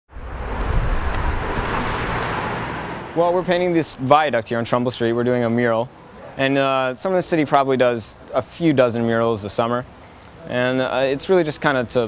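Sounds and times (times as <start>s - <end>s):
car driving by: 0.1s - 3.7s.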